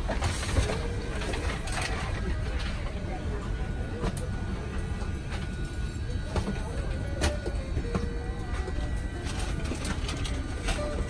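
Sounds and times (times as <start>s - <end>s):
voices: 0.1s - 11.0s.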